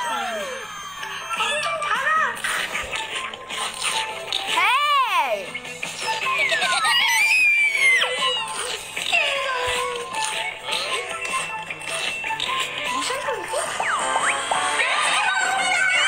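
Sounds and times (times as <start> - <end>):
excited voices: 0.0 - 0.7, 4.5 - 5.5, 14.6 - 16.0
background music: 0.0 - 16.0.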